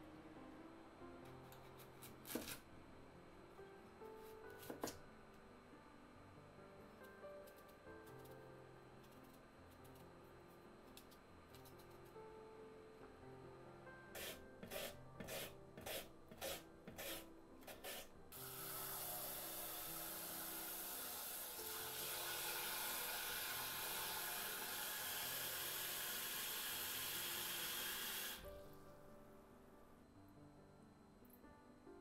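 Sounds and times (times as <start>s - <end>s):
knife cutting on wooden board: 14.2s - 18.1s
tap water running into bowl: 18.4s - 28.4s.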